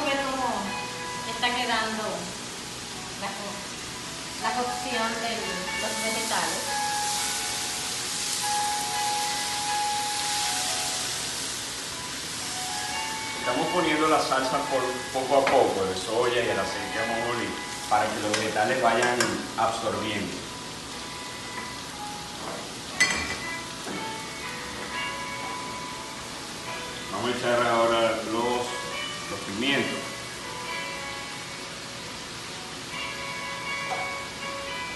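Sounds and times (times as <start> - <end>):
soft background music: 0.0 - 34.9
vegetables sizzling in a wok: 0.0 - 34.9.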